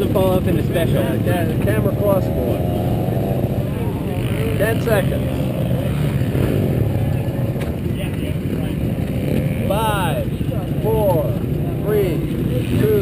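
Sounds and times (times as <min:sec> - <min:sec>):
dirt bike engine idling: 0:00.0 - 0:13.0.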